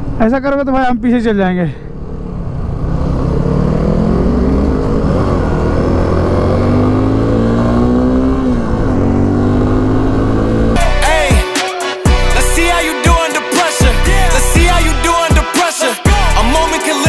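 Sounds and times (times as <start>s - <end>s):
motorcycle engine accelerating: 1.9s - 11.3s.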